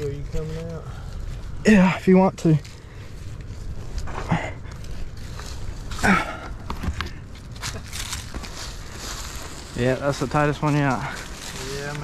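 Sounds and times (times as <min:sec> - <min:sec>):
dry leaves and dirt crunching: 0:00.0 - 0:12.0.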